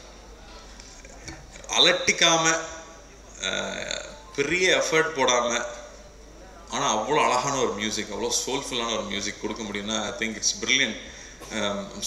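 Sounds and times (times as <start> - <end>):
man talking into a microphone: 1.6 - 2.8, 3.4 - 5.9, 6.7 - 12.0.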